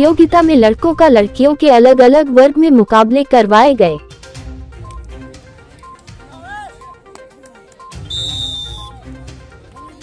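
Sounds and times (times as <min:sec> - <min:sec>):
background music: 0:00.0 - 0:10.0
referee's whistle blast: 0:07.8 - 0:09.0.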